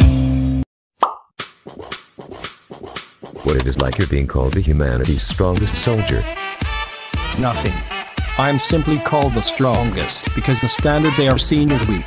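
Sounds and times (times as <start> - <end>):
cartoon pop with falling tone: 1.0 - 1.3.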